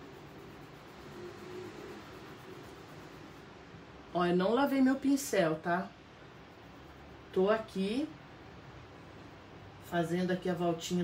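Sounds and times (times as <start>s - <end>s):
steady low hiss: 0.0s - 11.0s.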